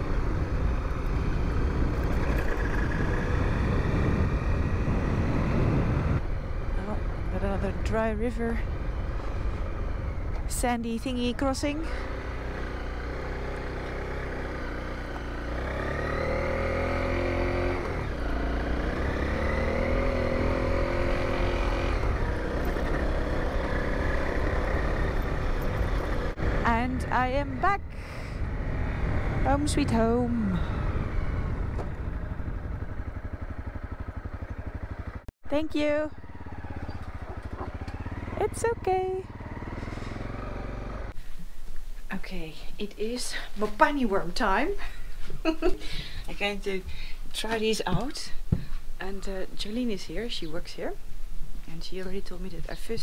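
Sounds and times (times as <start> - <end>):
motorcycle engine: 0.0 - 41.3
motorcycle engine idling: 30.1 - 41.3.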